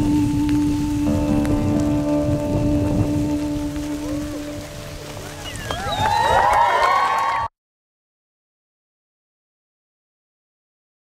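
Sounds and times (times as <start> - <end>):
low rumbling noise: 0.0 - 7.1.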